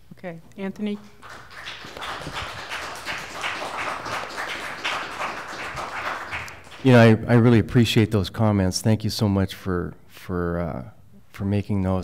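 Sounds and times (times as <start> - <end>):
audience applauding: 1.0 - 7.2.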